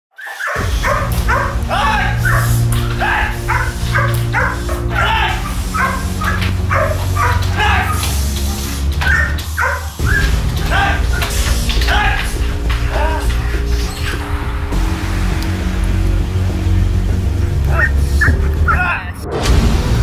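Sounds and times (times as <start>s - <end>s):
dog barking: 0.2s - 12.3s
background music with bass line: 0.6s - 20.0s.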